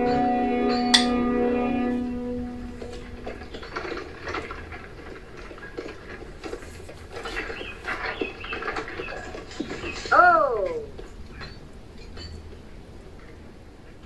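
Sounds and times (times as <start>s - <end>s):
film score held note: 0.0s - 4.0s
wooden cart creaking and rattling: 2.6s - 14.0s.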